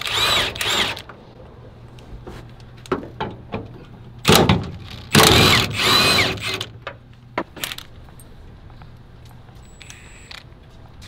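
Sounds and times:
cordless drill running: 0.0s - 1.0s, 5.2s - 6.7s.

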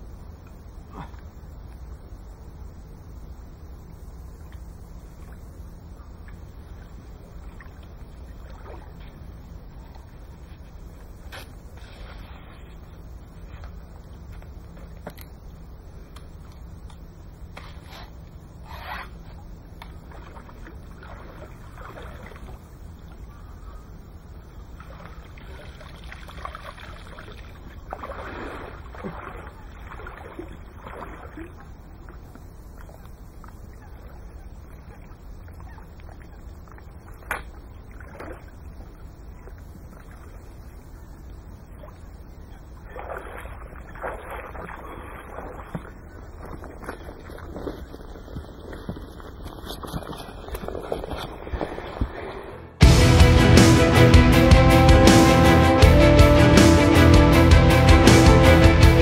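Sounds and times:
water splashing and sloshing: 4.2s - 53.3s
steady low rumble: 51.4s - 59.0s.

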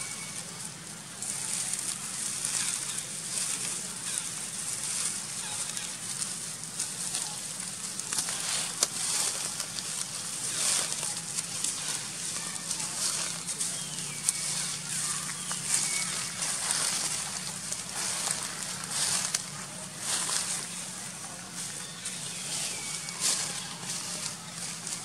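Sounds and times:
leaves crackling and rustling: 0.0s - 25.0s.

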